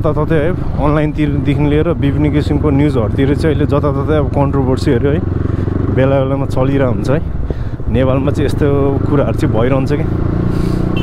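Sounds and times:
man talking: 0.0 - 5.3, 5.9 - 10.1.

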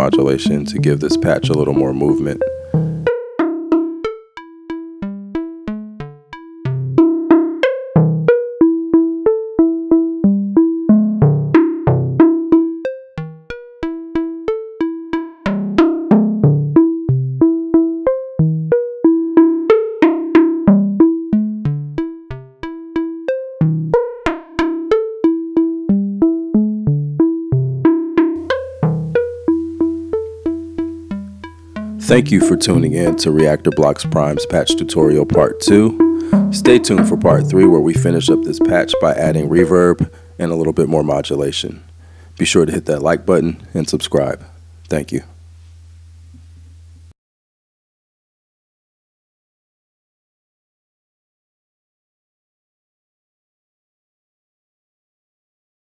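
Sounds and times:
synthesizer plucked notes melody: 0.0 - 44.4.

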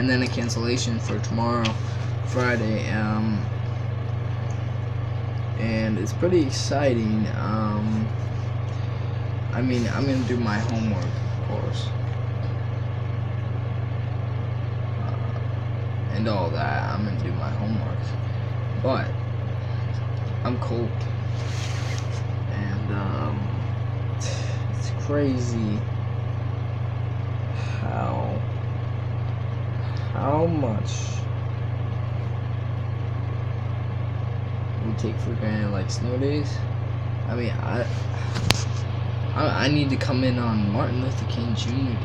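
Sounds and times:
steady low hum: 0.0 - 42.0.

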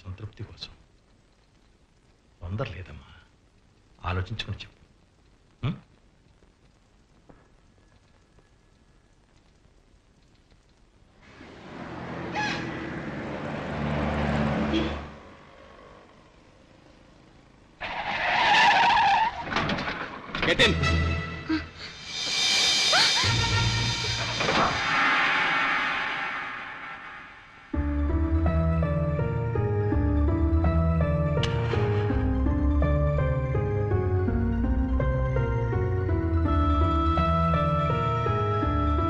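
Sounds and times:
faint soundtrack hiss: 0.0 - 39.0
hissing rush of noise: 21.8 - 27.8.

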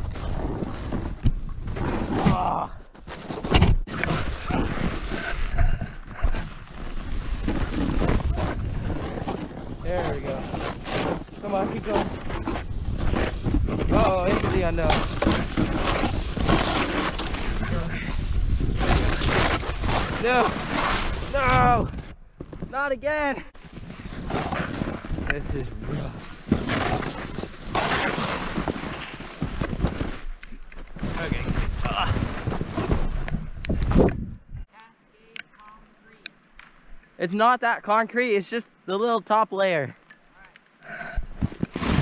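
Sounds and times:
wind on microphone: 3.9 - 22.2, 31.0 - 34.7
snowboard scraping over snow: 4.2 - 21.8, 23.6 - 30.3, 30.9 - 33.3.

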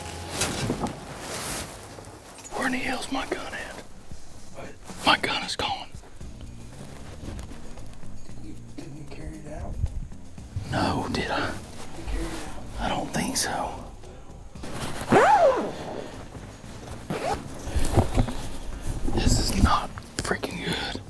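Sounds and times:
clothing brushing: 0.0 - 5.4, 11.4 - 13.3, 14.6 - 19.6
people whispering: 2.5 - 6.1, 10.6 - 14.3, 19.0 - 21.0.

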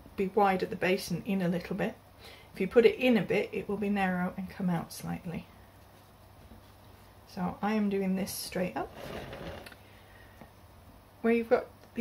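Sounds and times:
handling noise: 8.9 - 9.8.

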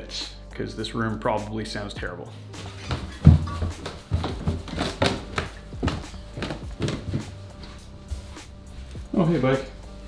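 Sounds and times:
background music: 0.0 - 10.0
footsteps on wooden stairs: 2.6 - 8.3.

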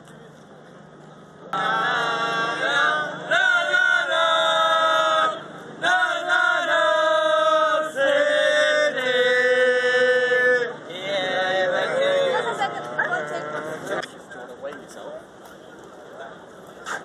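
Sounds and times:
football supporters chanting: 1.6 - 14.0.

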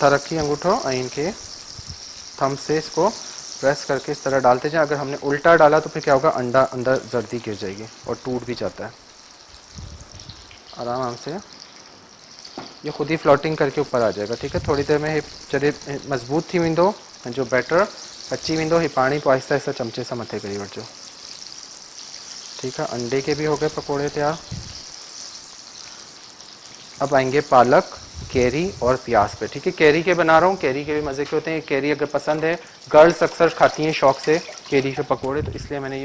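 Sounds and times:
food deep-frying in oil: 0.0 - 36.0.

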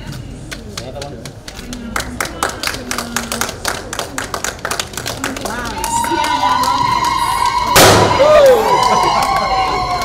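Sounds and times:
loud bang: 7.7 - 8.6.

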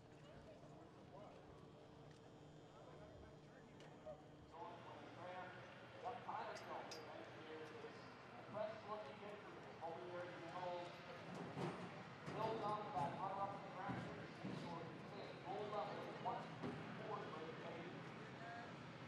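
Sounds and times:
faint indistinct talk: 0.0 - 18.8.

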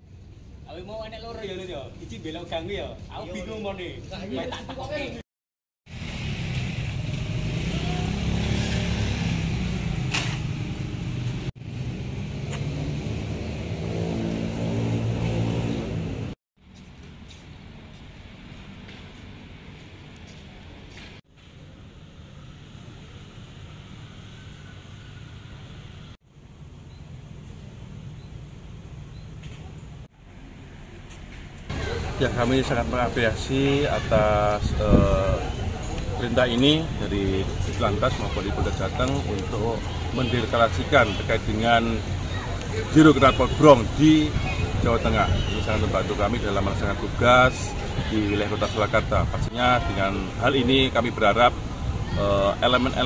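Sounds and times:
motorcycle engines droning: 5.9 - 16.4, 31.7 - 53.0
man speaking: 31.7 - 42.1, 42.8 - 53.0.

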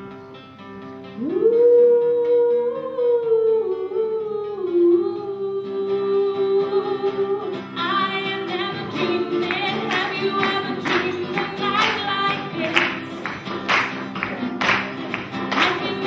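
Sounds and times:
acoustic guitar chords: 0.0 - 16.0
woman singing long wordless note: 1.2 - 13.0.

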